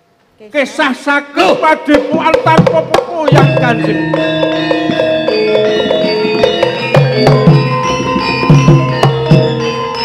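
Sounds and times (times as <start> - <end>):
metallophones ringing: 1.4 - 10.0.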